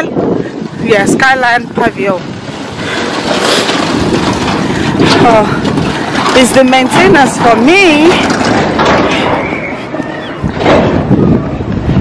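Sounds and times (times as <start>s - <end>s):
tug towing rolling bins: 0.2s - 12.0s.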